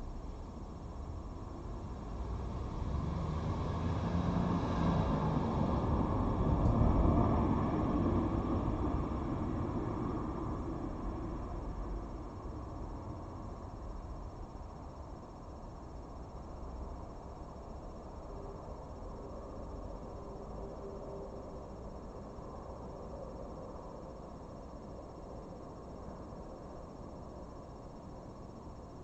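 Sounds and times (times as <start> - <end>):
vehicle passing by: 2.6 - 8.6.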